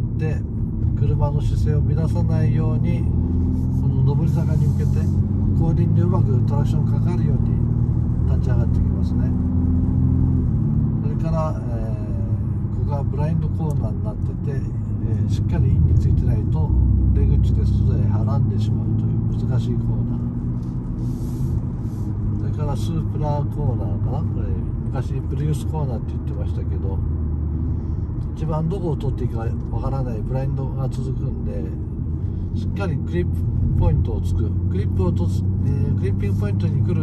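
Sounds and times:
car engine and road noise: 0:00.0 - 0:37.0.

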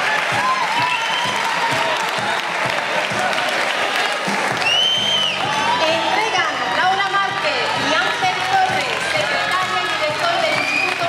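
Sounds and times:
audience applauding: 0:00.0 - 0:11.0
high-pitched cheer: 0:00.0 - 0:11.0.

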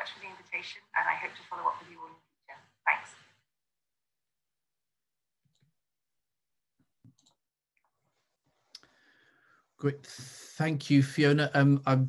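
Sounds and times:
man speaking: 0:09.8 - 0:12.0.

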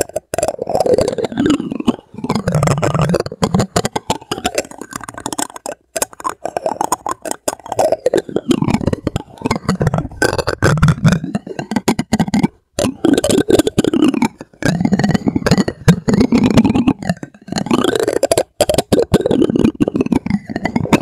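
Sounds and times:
plastic spoon scraping and clicking: 0:00.0 - 0:21.0.

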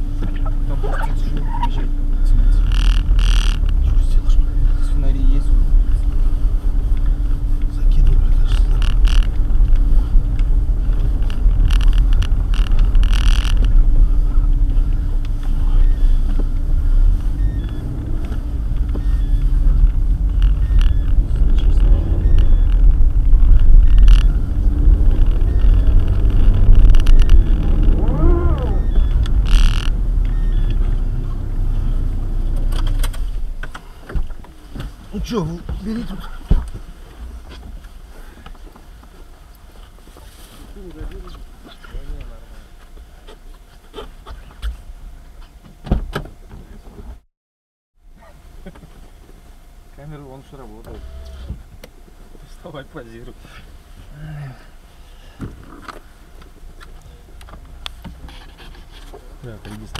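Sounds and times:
tyres on packed snow: 0:00.0 - 0:44.5
car engine rumble: 0:00.0 - 0:47.2, 0:48.0 - 0:59.9.

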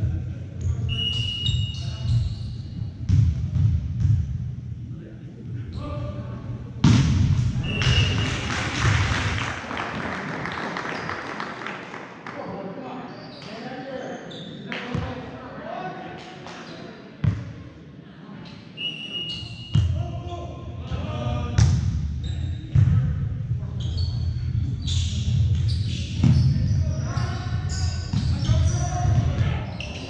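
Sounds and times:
sneaker squeaks on court floor: 0:00.9 - 0:02.8, 0:07.6 - 0:08.5, 0:13.1 - 0:15.1, 0:18.8 - 0:20.0, 0:23.8 - 0:30.0.

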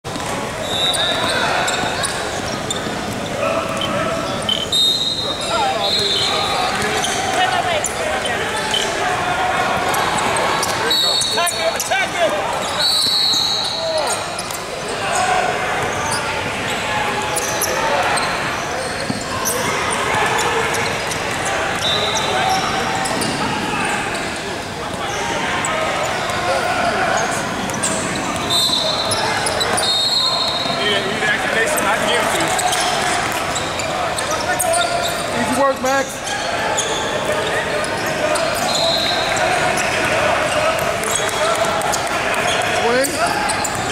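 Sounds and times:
voices echoing in hall: 0:00.0 - 0:43.9.

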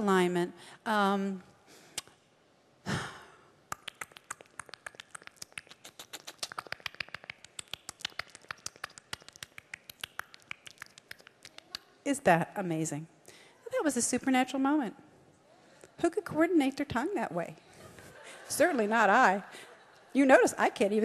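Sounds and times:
woman's tongue clicking: 0:02.0 - 0:02.2, 0:03.7 - 0:11.9
short breath: 0:13.2 - 0:13.6.

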